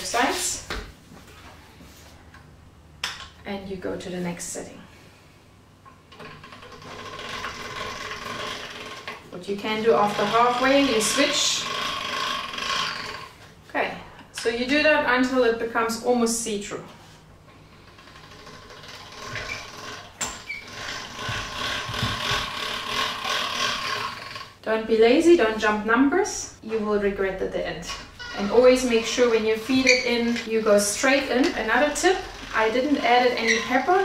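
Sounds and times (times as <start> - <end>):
pasta machine clicking whirr: 6.1 - 9.3, 9.9 - 13.3, 17.8 - 24.6.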